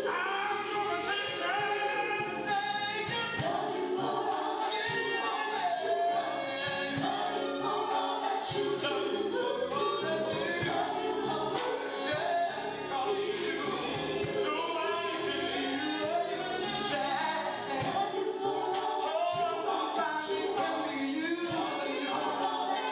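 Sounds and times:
gospel choir singing: 0.0s - 22.9s.

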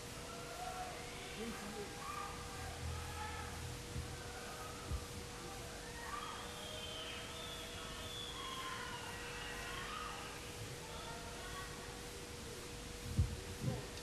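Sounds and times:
electrical hum: 0.0s - 14.0s
faint indistinct voices: 0.0s - 14.0s.

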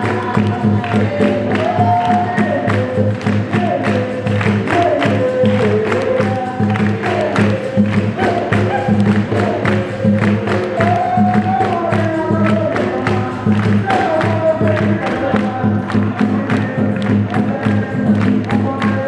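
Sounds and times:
group singing together: 0.0s - 19.0s
percussion: 0.0s - 19.0s
rhythmic hand clapping: 0.0s - 19.0s.

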